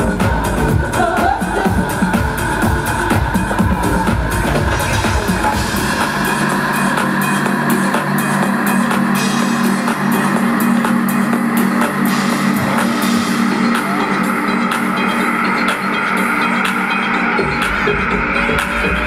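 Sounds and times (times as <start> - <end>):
live band dance music: 0.0 - 19.0.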